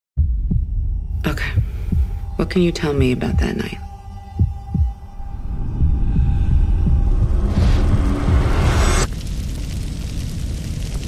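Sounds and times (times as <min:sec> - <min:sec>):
deep throbbing drone: 0:00.2 - 0:09.1
dull heartbeat-like thumps: 0:00.2 - 0:09.1.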